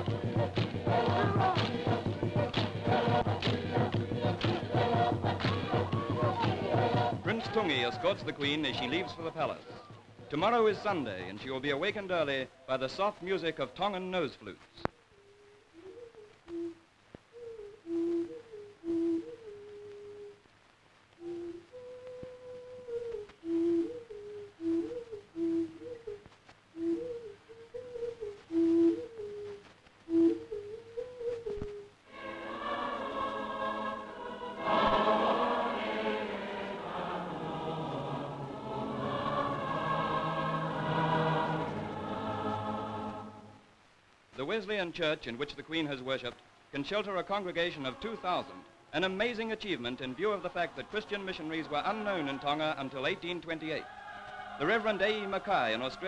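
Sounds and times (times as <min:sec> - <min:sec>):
nose flutes playing melody: 0:00.0 - 0:10.3, 0:14.9 - 0:20.5, 0:21.1 - 0:37.8, 0:50.2 - 0:56.0
choir singing: 0:00.0 - 0:11.1, 0:32.1 - 0:43.7, 0:47.3 - 0:56.0.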